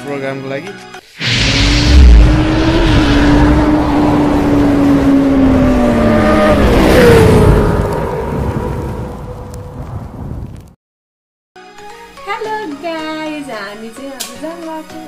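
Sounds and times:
motorcycle engine: 1.2 - 9.0
loud rush: 1.2 - 9.3.

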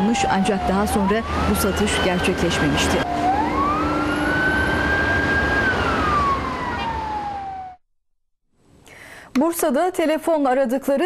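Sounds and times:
city traffic noise: 0.0 - 7.7
emergency siren wailing: 0.0 - 7.8.

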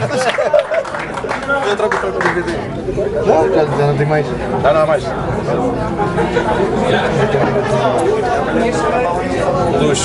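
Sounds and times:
chatter of several voices: 0.0 - 10.0.

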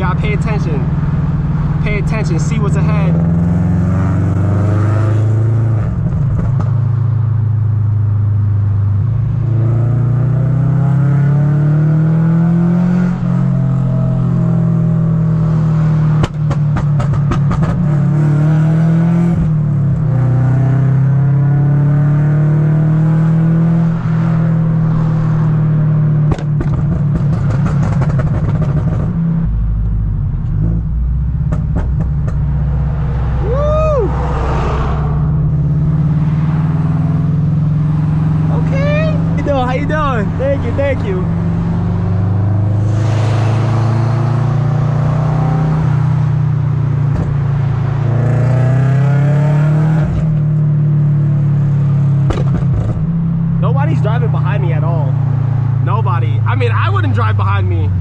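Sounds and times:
car engine droning: 0.0 - 58.0
exhaust crackling pops: 6.0 - 6.8, 16.2 - 17.8, 26.2 - 29.2, 31.3 - 32.6, 52.2 - 53.2.

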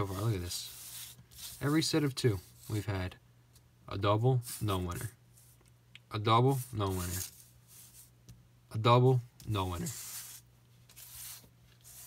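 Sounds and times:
paper rubbing: 0.0 - 2.8, 6.5 - 8.2, 9.6 - 12.0
paper swishing across countertop: 0.0 - 2.8, 6.6 - 8.1, 9.8 - 12.0.

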